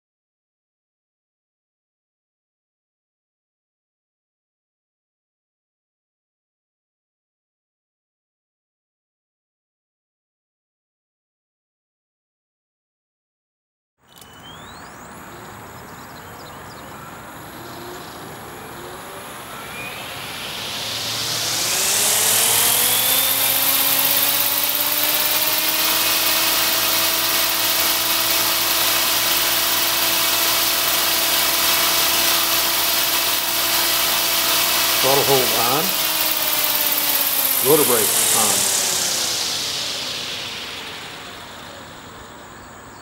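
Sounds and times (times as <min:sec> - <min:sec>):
helicopter rotor spinning up: 0:18.9 - 0:42.6.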